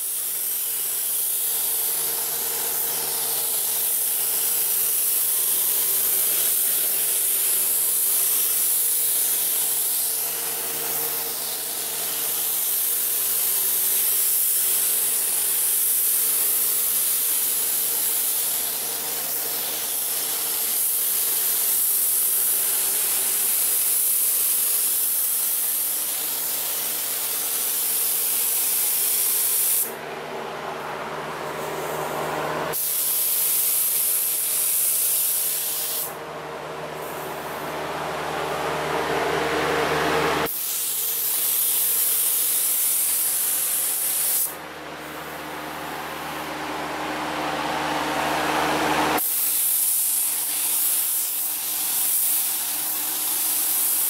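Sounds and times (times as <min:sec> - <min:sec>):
spray gun hissing: 0:00.0 - 0:30.0, 0:32.7 - 0:36.2, 0:40.4 - 0:44.6, 0:49.2 - 0:54.0
steady low hum: 0:29.9 - 0:32.8.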